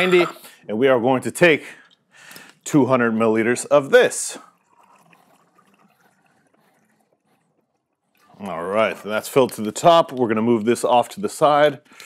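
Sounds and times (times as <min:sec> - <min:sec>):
liquid pouring into a glass: 0:04.2 - 0:09.0.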